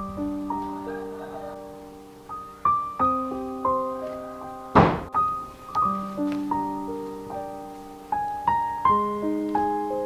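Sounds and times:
gentle piano music: 0.0 - 10.0
loud noisy thump: 4.8 - 5.2.

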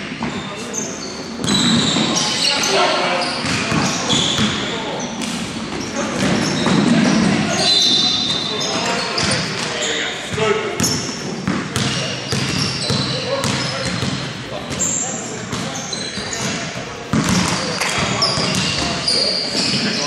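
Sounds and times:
sneakers squeaking: 0.0 - 20.0
basketball bouncing on wooden floor: 10.8 - 14.8, 16.4 - 18.9.

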